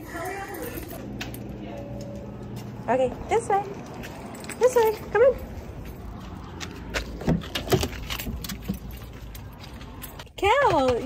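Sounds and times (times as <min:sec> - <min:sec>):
keys jangling: 0:00.0 - 0:02.3, 0:03.8 - 0:06.2, 0:07.2 - 0:10.4.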